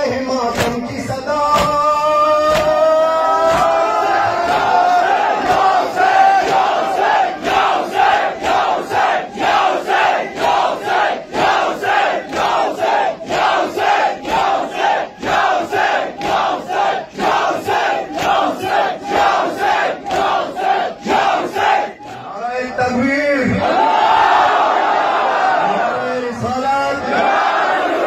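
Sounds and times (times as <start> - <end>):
crowd of men chanting: 0.0 - 22.3, 23.5 - 28.0
hands striking chests: 1.5 - 5.8
man speaking into a microphone: 22.2 - 23.6, 25.6 - 27.2.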